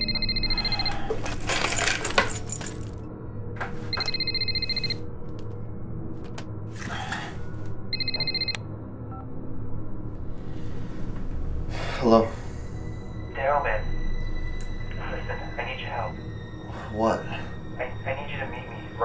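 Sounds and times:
phone ringing electronic trill: 0.0s - 1.0s, 3.9s - 5.0s, 8.0s - 8.6s.

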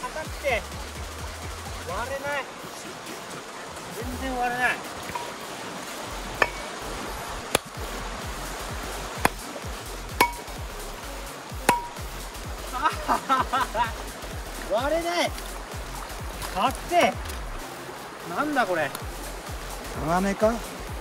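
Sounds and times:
background music with singing: 0.0s - 21.0s
stream flowing: 0.0s - 21.0s
rock hammer striking stones: 5.0s - 5.4s, 6.4s - 6.8s, 7.4s - 7.8s, 9.2s - 9.5s, 10.2s - 10.6s, 11.7s - 12.1s.

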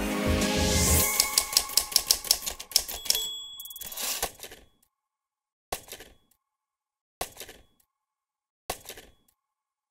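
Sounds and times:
typewriter key strikes: 1.1s - 3.4s
high bell ding: 2.9s - 4.0s.

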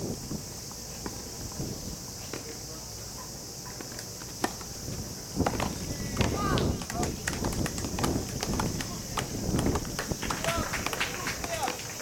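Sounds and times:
steady high hiss: 0.0s - 12.0s
voices calling out: 2.1s - 12.0s.

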